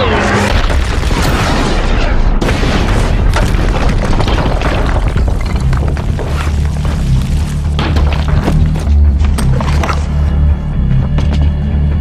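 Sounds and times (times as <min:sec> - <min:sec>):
explosions booming: 0:00.5 - 0:08.4
music: 0:03.2 - 0:12.0.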